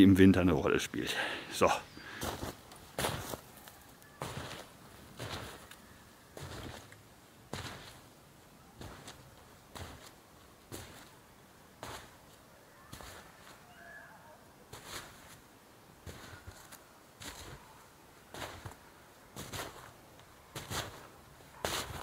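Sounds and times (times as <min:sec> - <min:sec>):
footsteps crunching in snow: 0:01.7 - 0:22.0.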